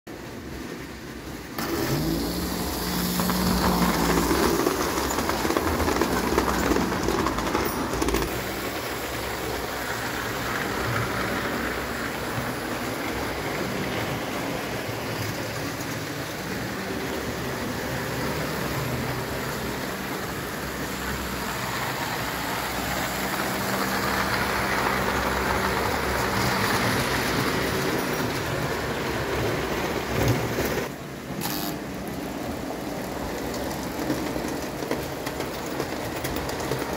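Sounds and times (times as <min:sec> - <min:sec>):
toy train wheels rumbling on rails: 0:00.3 - 0:36.9.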